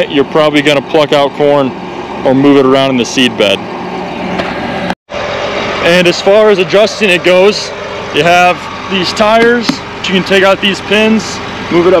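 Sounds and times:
tractor engine idling: 0.0s - 12.0s.

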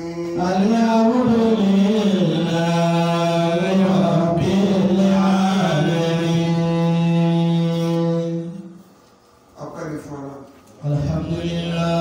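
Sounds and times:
man chanting verses: 0.0s - 8.8s, 9.6s - 12.0s.

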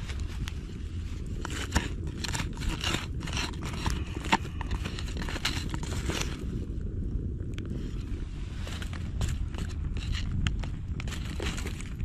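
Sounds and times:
embers crackling: 0.0s - 12.0s
stick scraping burning embers: 0.0s - 12.0s.

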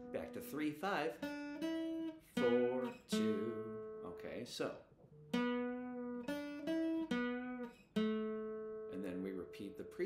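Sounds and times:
acoustic guitar single notes: 0.0s - 10.0s.

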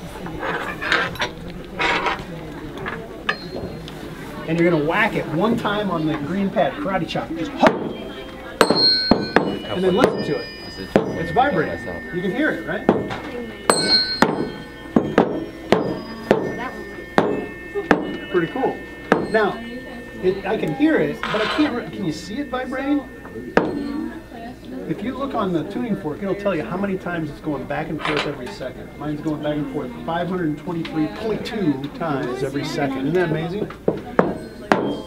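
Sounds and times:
children chattering: 0.0s - 35.0s
metal tuning forks clinking: 2.8s - 3.9s, 5.8s - 35.0s
tuning forks knocking on rubber: 8.6s - 12.0s, 12.8s - 19.6s.

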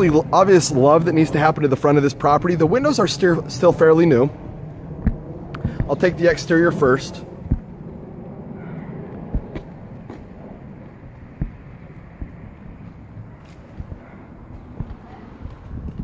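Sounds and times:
outdoor ambience: 0.0s - 16.0s
wind on microphone: 0.0s - 16.0s
footsteps on concrete: 5.0s - 6.2s, 7.4s - 8.0s, 9.1s - 16.0s.

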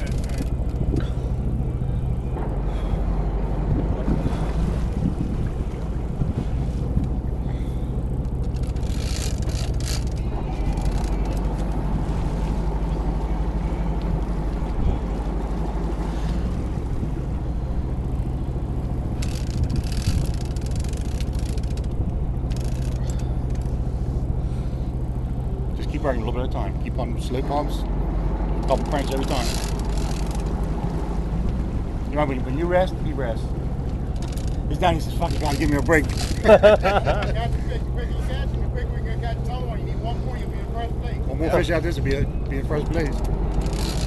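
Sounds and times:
wind gusting over microphone: 0.0s - 23.1s
boat engine humming: 0.0s - 44.0s.

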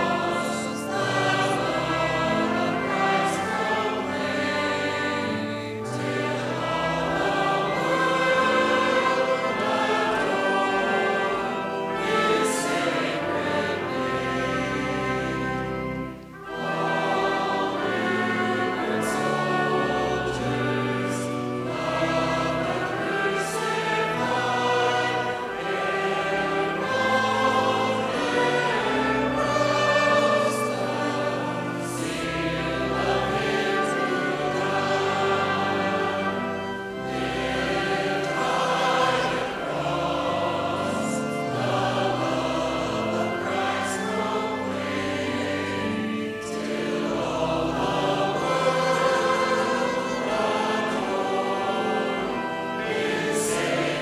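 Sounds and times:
congregation singing a hymn: 0.0s - 54.0s
pipe organ: 0.0s - 54.0s.

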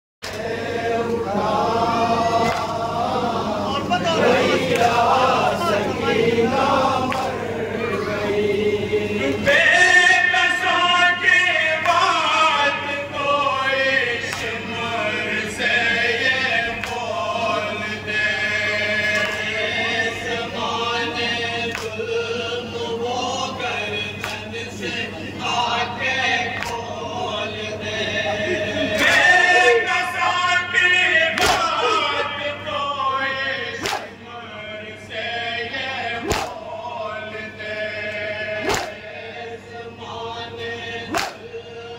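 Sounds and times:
men chanting lament in chorus: 0.2s - 41.9s
hand slapping chest: 33.8s - 34.1s, 36.2s - 36.6s, 38.6s - 39.0s, 41.1s - 41.4s.

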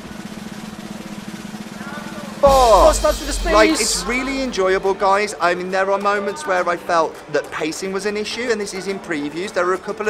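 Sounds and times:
snare drum roll: 2.4s - 5.2s.

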